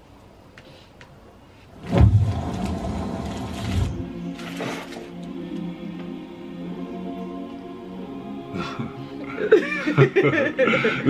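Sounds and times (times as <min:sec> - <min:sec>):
loud mechanical grinding rumble: 0:01.8 - 0:04.2.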